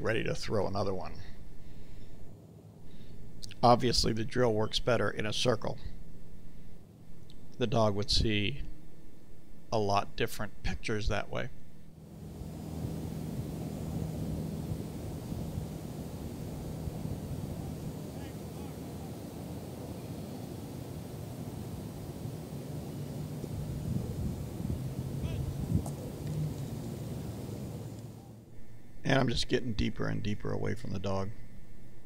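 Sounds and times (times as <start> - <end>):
distant traffic hum: 11.3 - 31.5
wind on microphone: 12.2 - 28.0.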